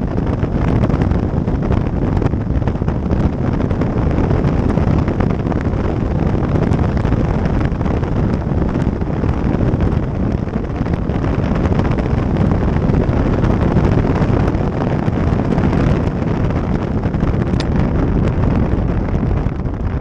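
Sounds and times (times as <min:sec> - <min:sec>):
wind noise on microphone: 0:00.0 - 0:20.0.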